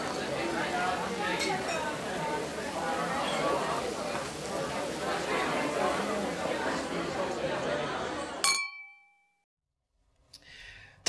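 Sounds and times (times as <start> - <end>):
murmur of indistinct voices: 0.0 - 8.4
drinking glasses clinking: 1.3 - 2.0, 8.4 - 9.4.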